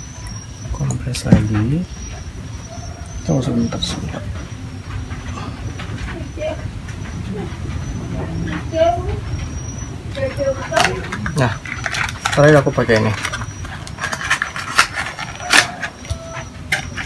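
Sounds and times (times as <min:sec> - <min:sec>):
steady low rumble: 0:01.8 - 0:15.1
faint voices: 0:02.8 - 0:13.6.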